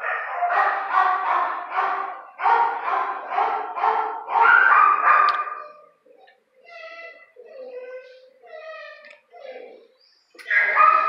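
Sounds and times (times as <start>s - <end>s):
dogs barking: 0.0s - 6.3s, 10.4s - 11.0s.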